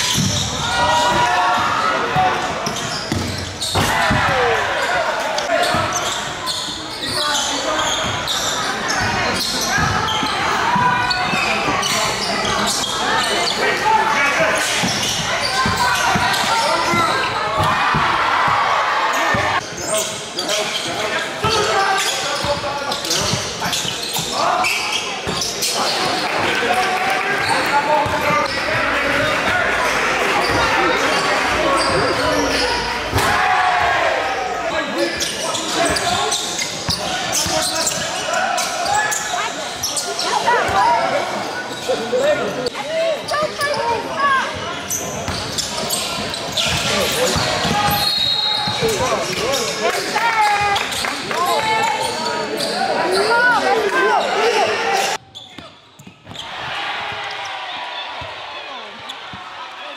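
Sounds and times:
chatter and shouts: 0:00.0 - 0:59.9.

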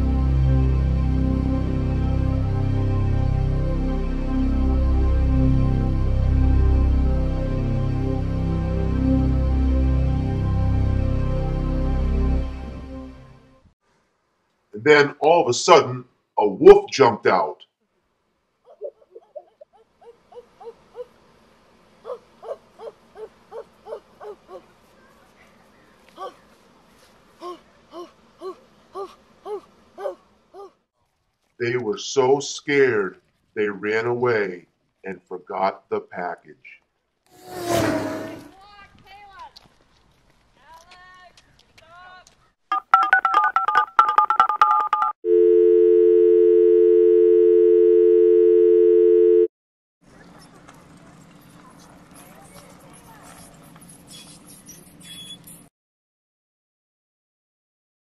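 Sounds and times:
voices: 0:22.0 - 0:26.5
telephone dial tone: 0:43.0 - 0:49.5.

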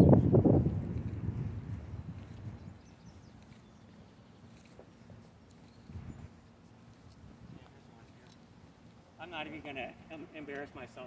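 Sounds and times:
wind on microphone: 0:00.0 - 0:03.5, 0:05.8 - 0:06.4
footsteps on asphalt: 0:00.1 - 0:11.0.

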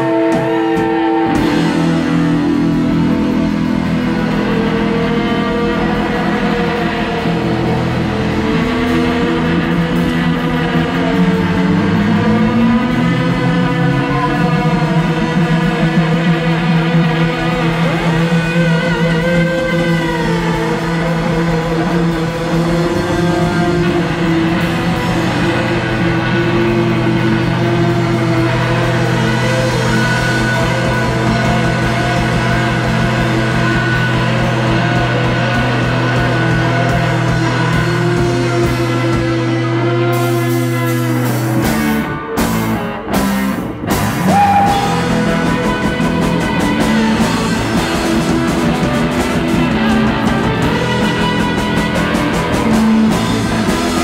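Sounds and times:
bass guitar: 0:00.0 - 0:54.0
drum kit: 0:00.0 - 0:54.0
electric guitars: 0:00.0 - 0:54.0.

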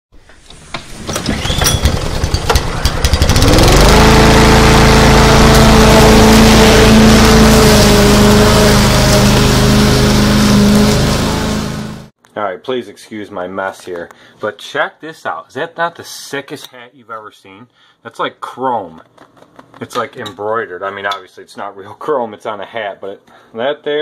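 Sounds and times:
engine starting and running: 0:00.2 - 0:12.1.

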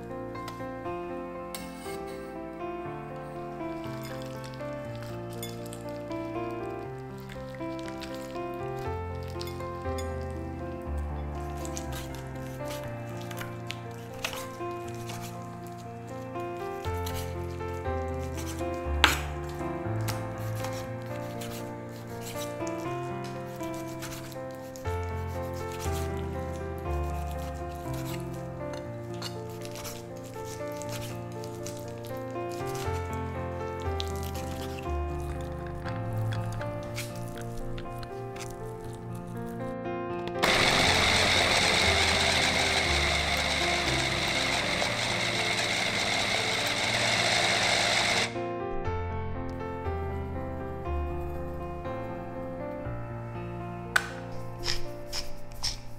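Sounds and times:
background music: 0:00.0 - 0:55.9
electric chopper mincing meat: 0:40.4 - 0:48.4
knife slicing on wooden board: 0:54.0 - 0:55.9.

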